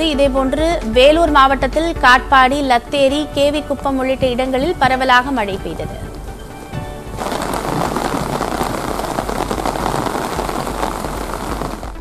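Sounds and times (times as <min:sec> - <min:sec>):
soft music: 0:00.0 - 0:12.0
rain falling: 0:04.1 - 0:12.0.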